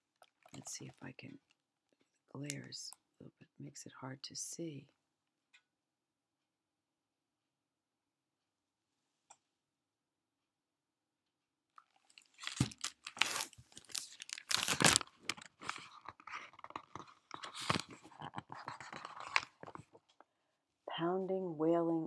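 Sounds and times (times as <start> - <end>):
handling noise crackling and crunching: 11.8 - 20.2.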